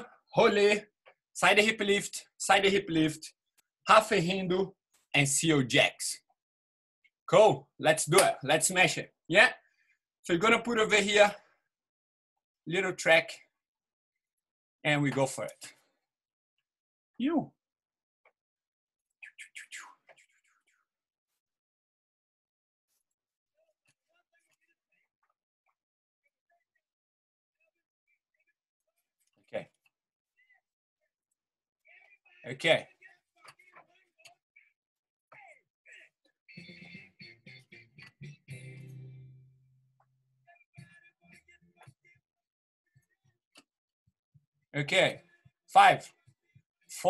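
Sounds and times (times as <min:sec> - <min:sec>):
small bird chirping: 0:19.2 - 0:20.8
strummed guitar chords: 0:36.6 - 0:39.8.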